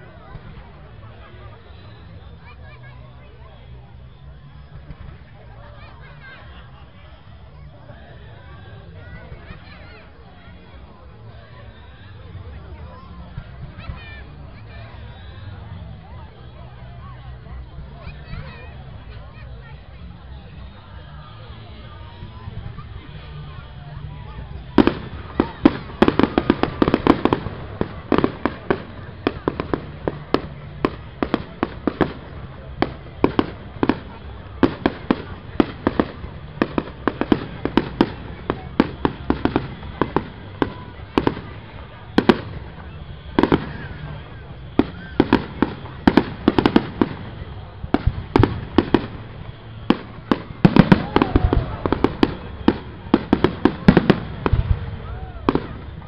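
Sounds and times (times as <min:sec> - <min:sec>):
fireworks bangs: 0:21.4 - 0:56.0.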